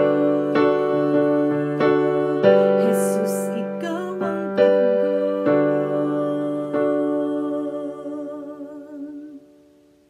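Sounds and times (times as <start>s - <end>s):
held keyboard chord: 0.0s - 9.2s.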